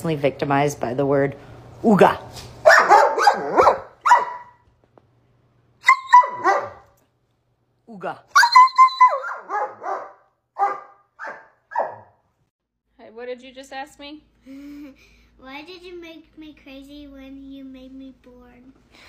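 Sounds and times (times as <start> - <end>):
dog barking: 2.6 - 4.6, 5.8 - 7.0, 8.4 - 12.2.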